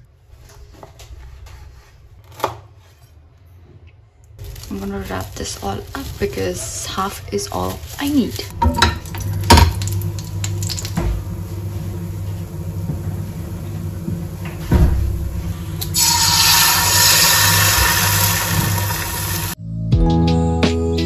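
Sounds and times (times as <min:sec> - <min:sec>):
egg sizzling in hot oil: 0:08.8 - 0:11.0, 0:15.8 - 0:19.6
background music: 0:19.6 - 0:21.0.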